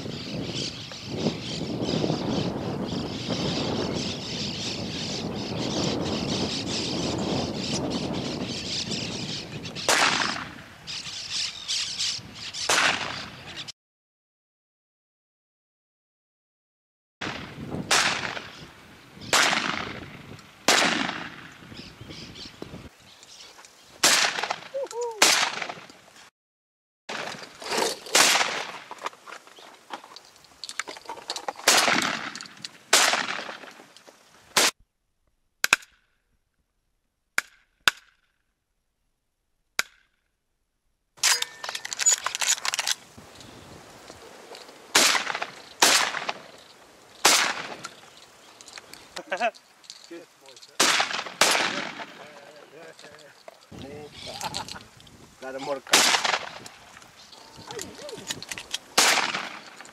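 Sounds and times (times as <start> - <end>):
shotgun shots: 9.9 - 10.6, 12.7 - 13.3, 17.2 - 18.6, 19.3 - 20.1, 20.7 - 21.5, 24.0 - 25.8, 28.1 - 28.8, 31.6 - 33.7, 44.9 - 46.5, 47.2 - 47.9, 50.8 - 52.4, 55.9 - 56.6, 59.0 - 59.8.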